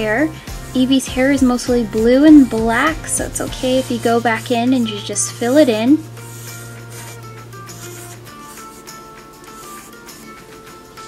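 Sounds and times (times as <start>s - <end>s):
soft background music: 0.0s - 11.0s
pencil scratching on paper: 0.7s - 10.4s.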